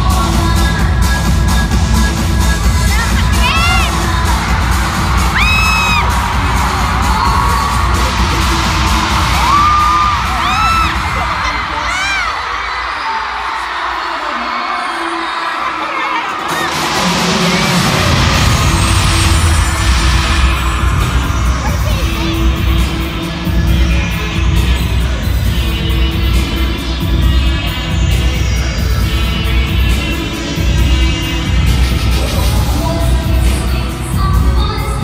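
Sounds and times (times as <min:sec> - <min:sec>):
pop dance music over pa: 0:00.0 - 0:35.0
crowd screaming and whooping: 0:02.8 - 0:32.7.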